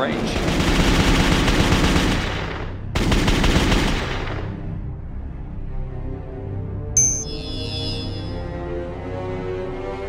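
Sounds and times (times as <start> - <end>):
rapid automatic gunfire: 0.0 - 4.5
sombre music: 2.8 - 10.0.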